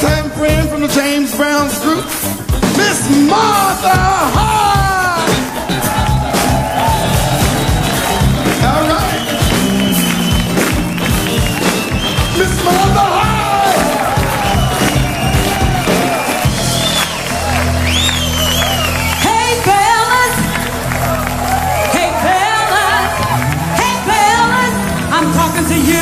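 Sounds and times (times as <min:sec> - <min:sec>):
live funk band playing: 0:00.0 - 0:26.0
crowd cheering: 0:02.8 - 0:26.0
woman singing: 0:19.2 - 0:20.5, 0:21.9 - 0:26.0.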